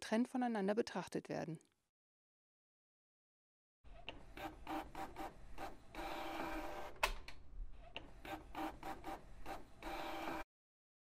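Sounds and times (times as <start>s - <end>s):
printer clicking and whirring: 7.9s - 10.4s.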